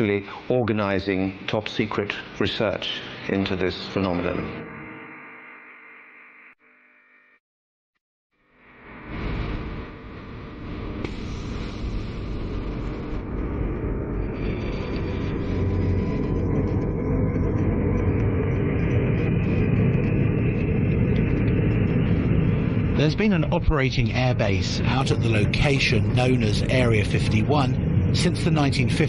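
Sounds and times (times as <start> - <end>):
jet engines rumbling: 10.4 - 29.0.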